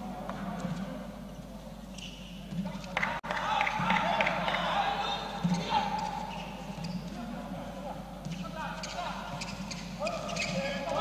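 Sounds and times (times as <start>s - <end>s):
shoe squeaks: 1.9s - 2.4s, 5.4s - 7.3s, 8.3s - 11.0s.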